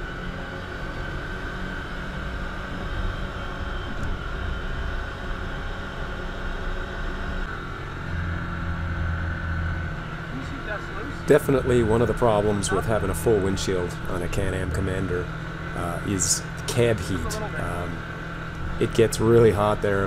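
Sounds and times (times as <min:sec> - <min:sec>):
drivetrain and trail noise: 0:00.0 - 0:20.0
vehicle engine running: 0:00.0 - 0:20.0.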